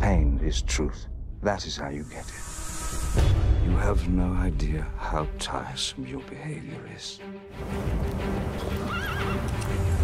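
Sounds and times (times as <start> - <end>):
trailer music: 0.0 - 10.0
horse whinnying: 8.6 - 9.6.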